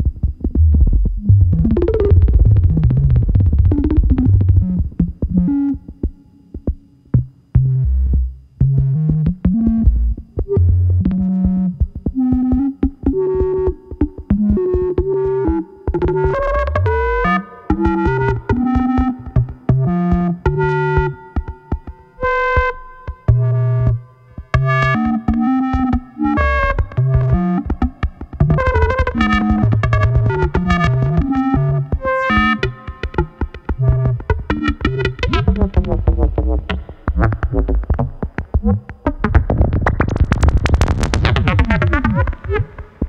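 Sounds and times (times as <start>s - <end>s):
synthesizer electronic notes: 0.0s - 43.0s
sharp clicks: 32.4s - 43.0s.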